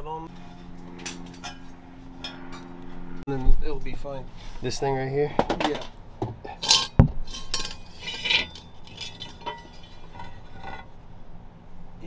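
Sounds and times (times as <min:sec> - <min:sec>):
metal clinking and rattling: 0:06.6 - 0:11.0.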